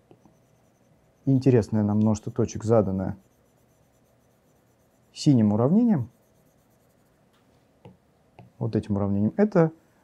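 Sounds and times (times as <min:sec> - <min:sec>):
man speaking: 0:01.3 - 0:03.2, 0:05.2 - 0:06.1, 0:08.6 - 0:09.8.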